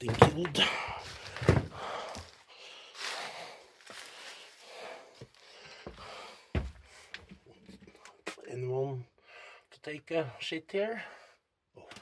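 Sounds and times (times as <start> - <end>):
person breathing hard: 0.6 - 7.3, 9.2 - 9.7.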